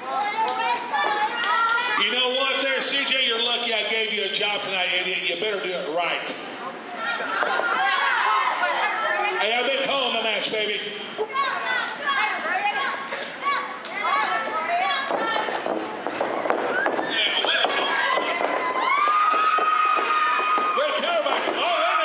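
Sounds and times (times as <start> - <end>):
crowd shouting: 7.0 - 9.4, 16.2 - 22.0.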